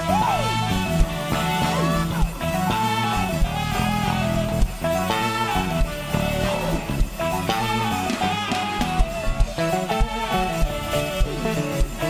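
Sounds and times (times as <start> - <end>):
worship band instrumental: 0.0 - 12.0.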